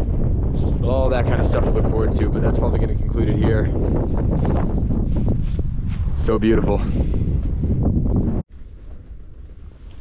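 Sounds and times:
low rumble of wind: 0:00.0 - 0:10.0
wind buffeting microphone: 0:00.0 - 0:10.0.

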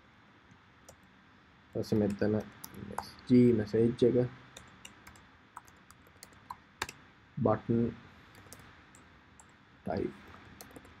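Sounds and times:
faint keyboard keystrokes: 0:01.8 - 0:03.1, 0:08.3 - 0:08.7, 0:09.4 - 0:11.0.

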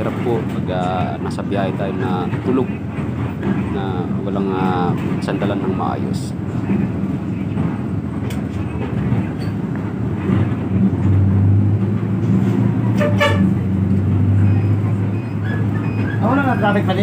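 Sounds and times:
bus engine: 0:00.0 - 0:17.0
road rumble: 0:00.0 - 0:17.0
vehicle horn toot: 0:13.0 - 0:13.6.

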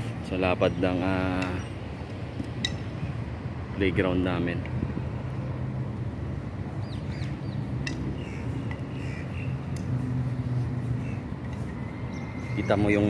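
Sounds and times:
bird chirps: 0:06.8 - 0:13.0.

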